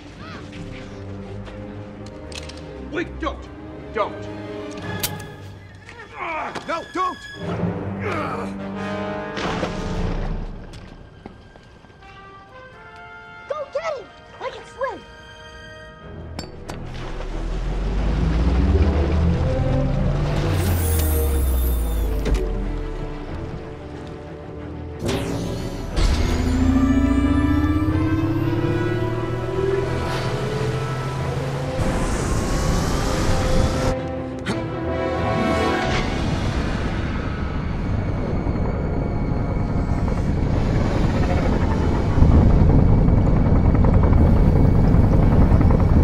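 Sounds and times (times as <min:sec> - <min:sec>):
film score with held notes: 0:00.0 - 0:46.0
submarine rushing underwater: 0:16.8 - 0:23.8
low rumble: 0:16.9 - 0:23.8, 0:25.6 - 0:34.0.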